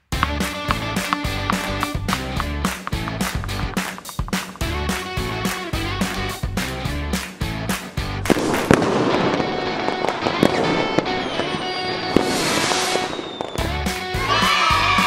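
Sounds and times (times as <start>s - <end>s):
upbeat music with steady beat: 0.0s - 8.2s
fireworks cracking and crackling: 0.0s - 14.2s.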